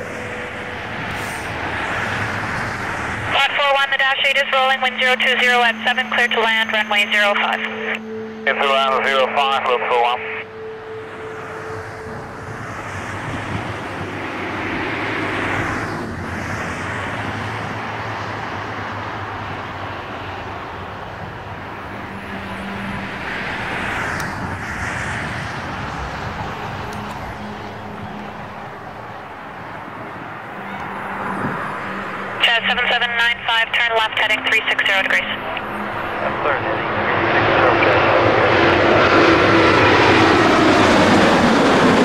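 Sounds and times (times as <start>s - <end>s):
airliner jet rumble: 0.0s - 42.0s.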